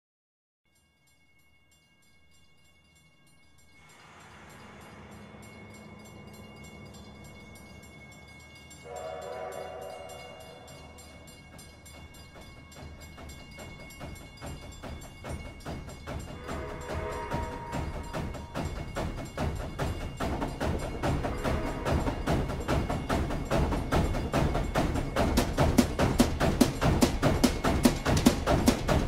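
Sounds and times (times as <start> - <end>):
music: 0.7 - 29.0
locomotive chugging: 3.7 - 29.0
steam hissing: 3.8 - 12.3, 13.0 - 29.0
steam whistle blowing: 8.8 - 11.2, 16.4 - 18.6, 21.2 - 22.7.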